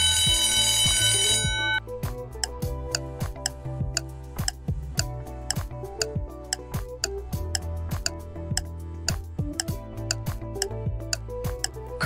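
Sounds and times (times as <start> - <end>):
loud ringing alarm: 0.0 - 1.8
background music: 0.0 - 12.0.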